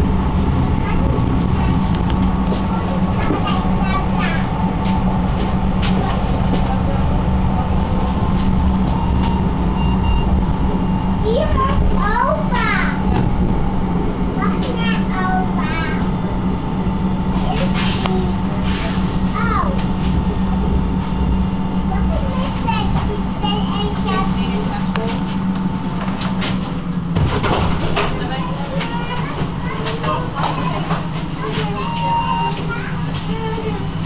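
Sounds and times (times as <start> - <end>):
children's voices: 0.0 - 8.4, 11.1 - 16.4, 17.2 - 20.1, 21.7 - 25.3, 28.0 - 34.0
thin steady whine: 0.0 - 27.2
tram rumbling: 0.0 - 34.0
people chattering: 5.4 - 9.8, 27.9 - 34.0.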